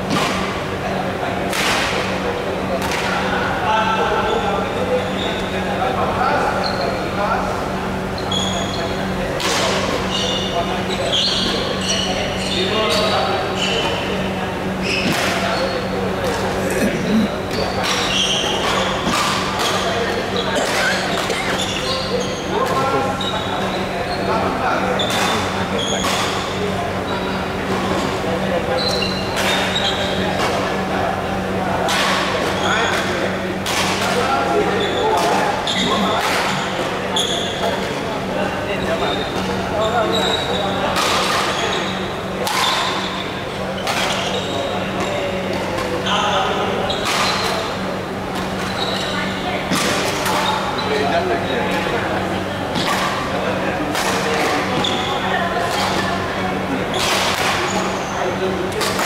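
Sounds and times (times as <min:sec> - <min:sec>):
background chatter: 0:00.0 - 0:59.0
shoes squeaking on court floor: 0:04.0 - 0:05.7, 0:06.4 - 0:07.2, 0:08.0 - 0:59.0.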